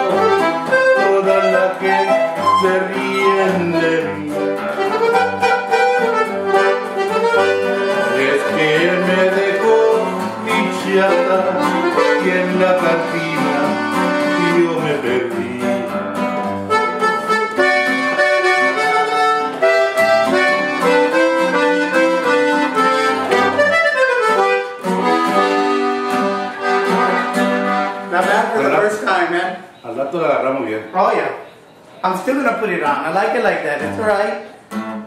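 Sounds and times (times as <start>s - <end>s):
guitar strumming chords: 0.0s - 29.0s
button accordion melody: 0.0s - 29.9s.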